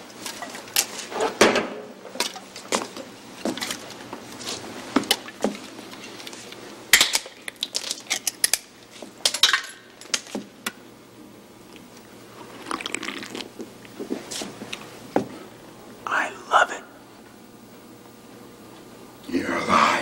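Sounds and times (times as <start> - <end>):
soft drinking sounds: 11.6 - 14.9.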